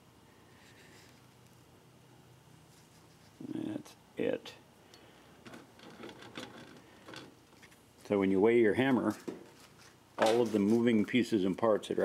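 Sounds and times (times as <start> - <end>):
handling clicks and rustles: 5.4 - 8.2, 8.9 - 12.0.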